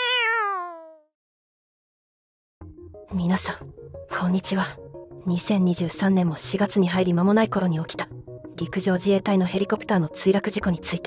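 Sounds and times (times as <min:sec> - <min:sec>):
cat meow: 0:00.0 - 0:01.1.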